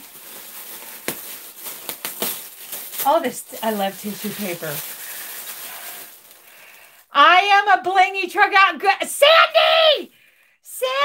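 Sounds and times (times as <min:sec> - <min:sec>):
paper crackles: 0:00.0 - 0:07.0
tissue paper rustling: 0:00.0 - 0:07.1.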